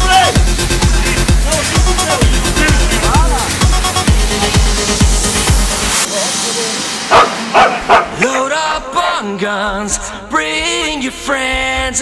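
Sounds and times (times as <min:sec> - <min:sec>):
electronic dance music: 0:00.0 - 0:09.8
person singing: 0:06.1 - 0:12.0
dog barking: 0:07.1 - 0:08.4.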